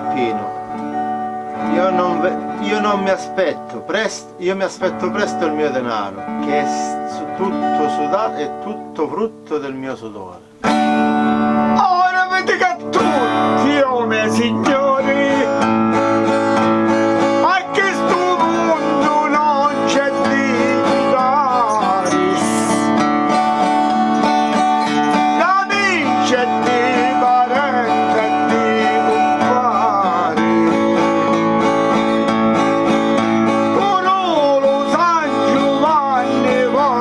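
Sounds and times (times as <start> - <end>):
man singing folk ballad: 0.0 - 10.4, 11.6 - 37.0
acoustic guitar strumming: 0.0 - 37.0.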